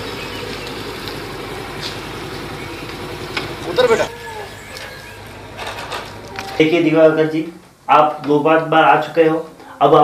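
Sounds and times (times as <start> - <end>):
vehicle engine idling: 0.0 - 6.6.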